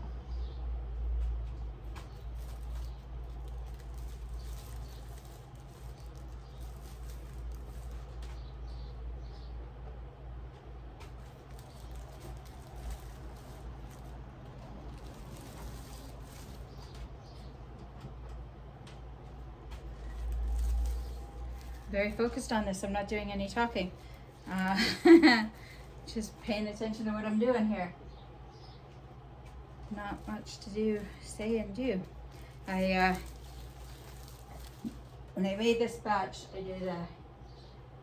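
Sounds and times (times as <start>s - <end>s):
steady low hum: 0.0s - 38.0s
light rustling: 1.9s - 8.8s, 11.0s - 18.0s, 19.6s - 26.6s, 29.4s - 35.4s.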